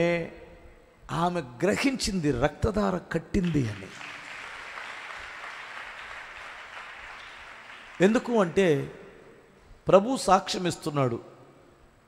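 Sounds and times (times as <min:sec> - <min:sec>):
audience applause: 0:03.5 - 0:08.4.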